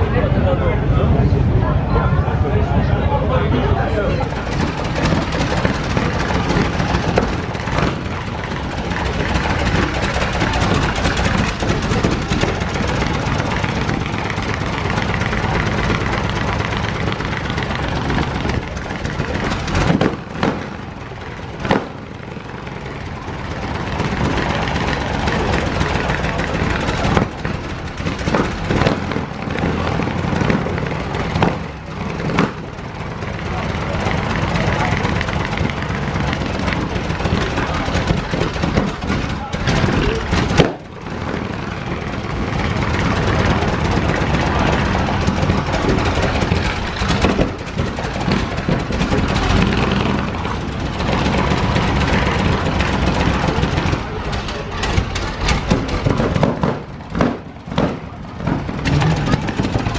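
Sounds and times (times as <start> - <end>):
car engine idling: 0.0 - 59.9
crowd chatter: 0.0 - 59.9.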